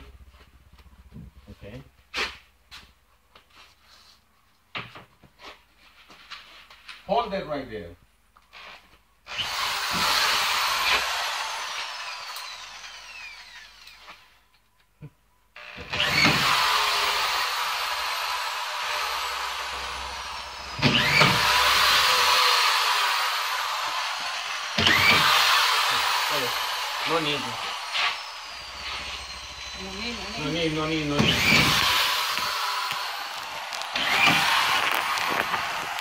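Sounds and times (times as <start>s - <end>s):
power drill driving screws: 8.5s - 14.4s, 15.6s - 36.0s.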